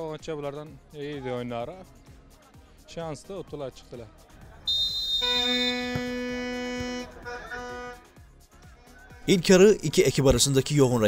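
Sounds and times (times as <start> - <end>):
pitched horn-like tone: 4.7 - 8.0
shrill whistle-like tone: 4.7 - 8.0.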